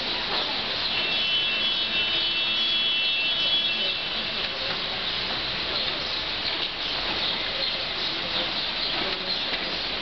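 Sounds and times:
light rain falling: 0.0 - 10.0.

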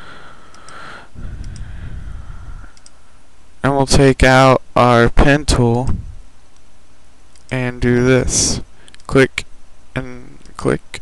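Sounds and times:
microphone hiss: 0.0 - 11.0
computer mouse clicks: 1.4 - 1.7, 2.7 - 3.0, 7.3 - 7.6.

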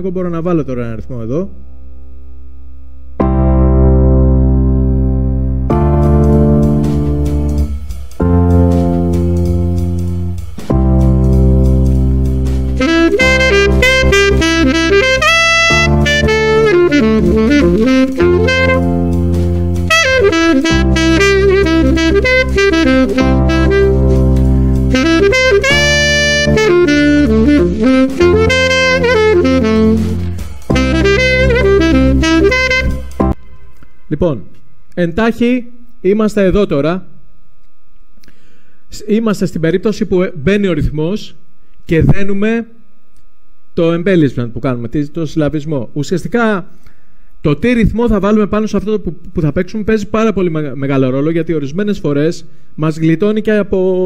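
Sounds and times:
alto saxophone jazz line: 3.2 - 33.4
electric piano chords: 3.2 - 33.4.

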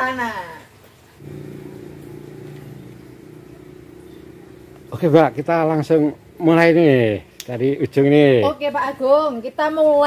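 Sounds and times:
low engine hum: 1.2 - 7.4.

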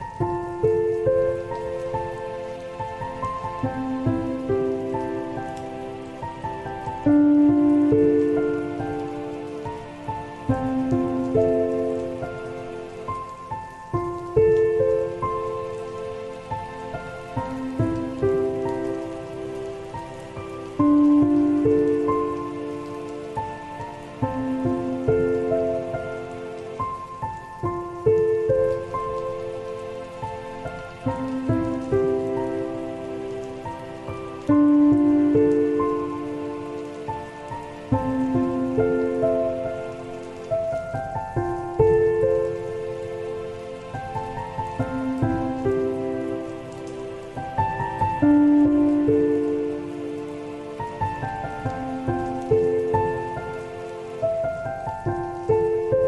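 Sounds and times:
falling rain: 0.0 - 56.0
soft solo piano melody: 0.0 - 56.0.

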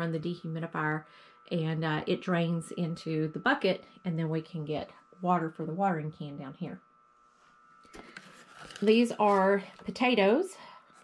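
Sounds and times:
woman speaking: 0.0 - 6.8, 8.8 - 10.7
faint steady hum: 0.0 - 11.0
soft rustling: 7.2 - 9.9.

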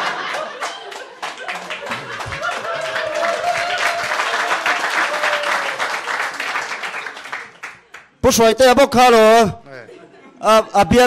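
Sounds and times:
audience laughing: 0.0 - 5.4, 9.8 - 11.0
audience clapping: 0.0 - 8.2
crowd noise: 0.0 - 8.3, 9.7 - 11.0.

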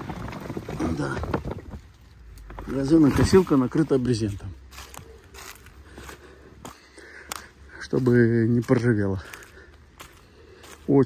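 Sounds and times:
plastic tarp rustling and crinkling: 0.0 - 6.0.

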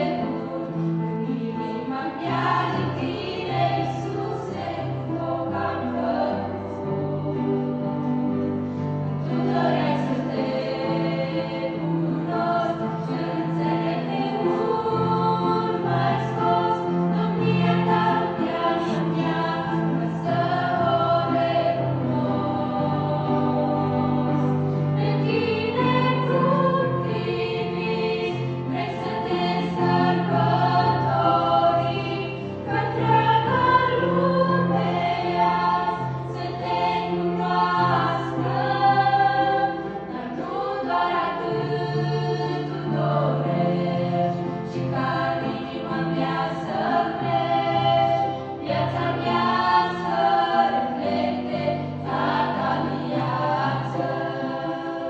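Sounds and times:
girls' choir singing a hymn: 0.0 - 55.0.

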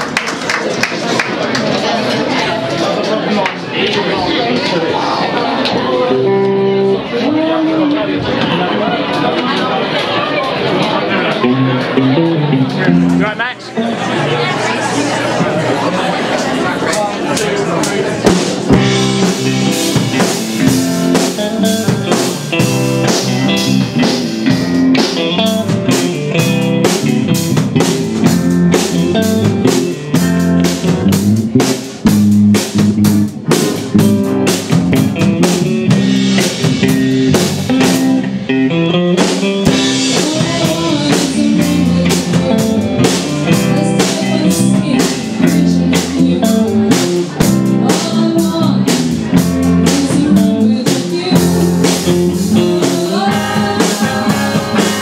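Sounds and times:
live rock band playing: 1.7 - 55.0.

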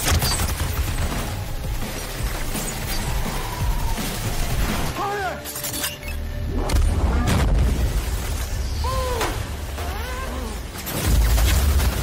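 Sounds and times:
film score music: 0.0 - 12.0
sharp crashes and shattering impacts: 10.6 - 12.0.

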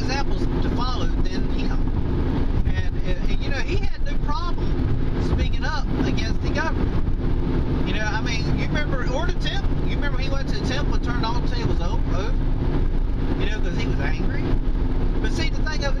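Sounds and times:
man talking: 0.0 - 1.9, 2.6 - 6.8, 7.8 - 12.4, 13.4 - 14.6, 15.2 - 16.0
car road and engine noise: 0.0 - 16.0.

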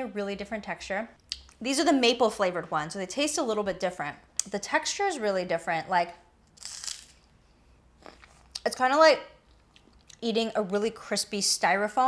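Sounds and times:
crunch of crispy cookie: 6.5 - 7.2.

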